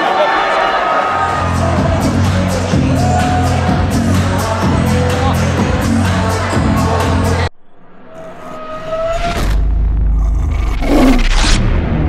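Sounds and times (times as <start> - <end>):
swish: 7.7 - 11.8.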